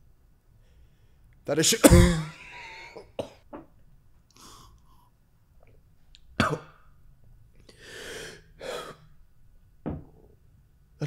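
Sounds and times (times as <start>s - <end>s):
man coughing: 1.6s - 3.4s.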